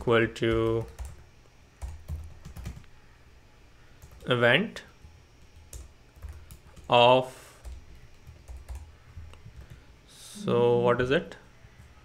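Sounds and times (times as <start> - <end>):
computer keyboard typing: 0.0 - 1.2, 1.8 - 2.9, 4.0 - 4.3, 5.4 - 6.9, 7.6 - 9.8.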